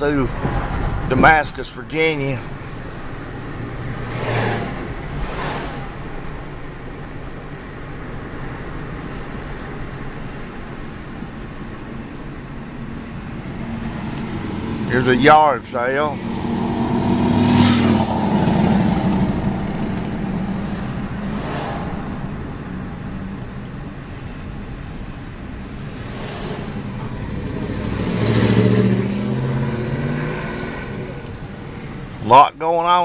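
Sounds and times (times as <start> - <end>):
car engine and road noise: 0.0 - 33.0.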